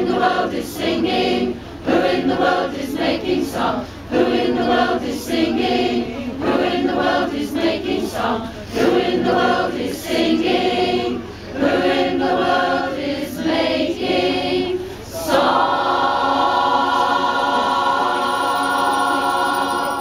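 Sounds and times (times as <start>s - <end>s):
choir singing unaccompanied: 0.0s - 20.0s.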